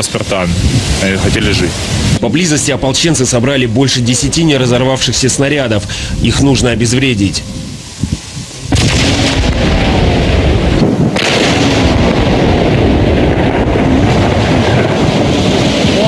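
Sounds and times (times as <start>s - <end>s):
explosion blast: 8.7s - 16.0s
loud rumble: 8.7s - 16.0s.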